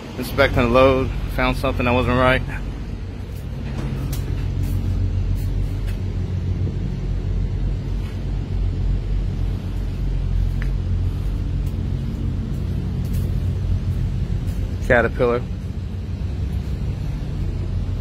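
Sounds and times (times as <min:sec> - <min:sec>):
truck engine idling: 0:00.0 - 0:18.0.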